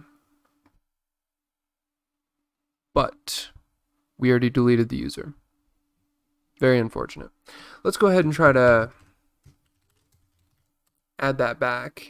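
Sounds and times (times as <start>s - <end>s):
computer keyboard keystrokes: 8.9s - 11.0s.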